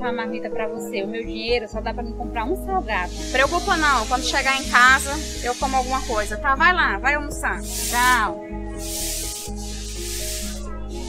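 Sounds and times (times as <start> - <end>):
background music with held notes: 0.0 - 11.0
broom sweeping a tiled floor: 3.1 - 6.4, 7.6 - 11.0.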